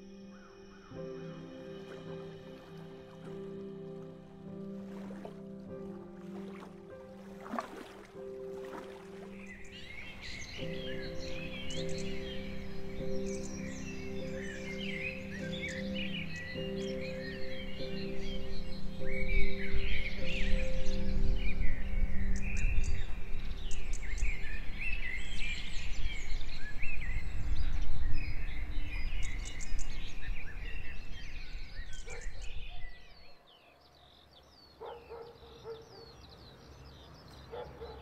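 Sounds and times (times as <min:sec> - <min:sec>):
low musical drone: 0:00.0 - 0:25.2
birdsong chirps and whistles: 0:08.6 - 0:38.0.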